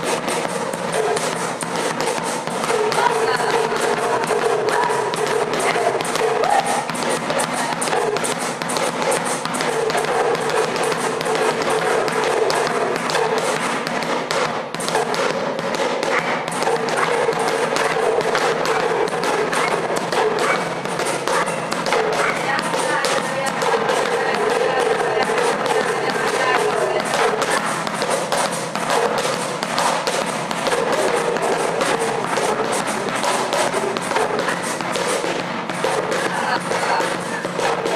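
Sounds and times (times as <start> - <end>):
small drum beaten with stick: 0.0 - 37.9.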